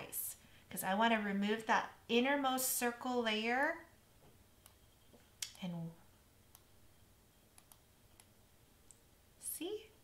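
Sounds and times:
computer mouse clicks: 0:06.5 - 0:06.7, 0:07.5 - 0:09.0.

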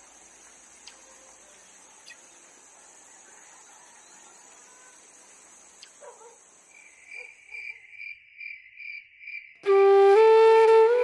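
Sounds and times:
crickets chirping: 0:00.0 - 0:09.9.

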